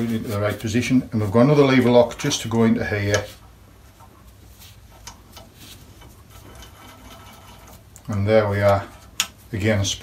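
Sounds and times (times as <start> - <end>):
low steady hum: 0.0 - 10.0
small metal clicks and scrapes: 5.0 - 9.3.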